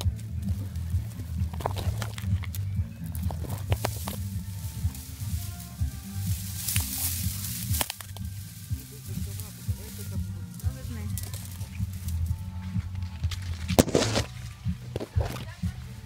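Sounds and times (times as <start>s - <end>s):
dry plant stalks crackling: 0.0s - 16.0s
music with stepping bass line: 0.0s - 16.0s.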